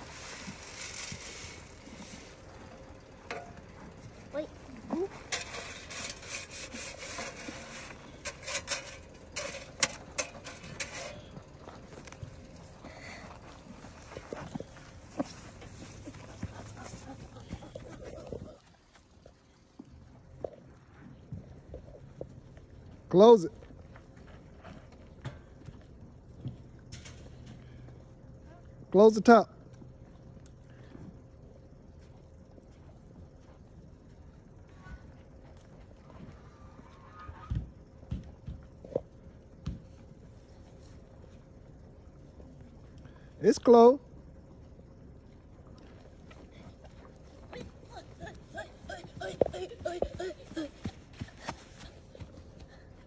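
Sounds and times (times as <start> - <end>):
horse hooves clopping: 0.0 - 5.3, 9.1 - 28.5, 29.6 - 43.0, 44.1 - 53.0.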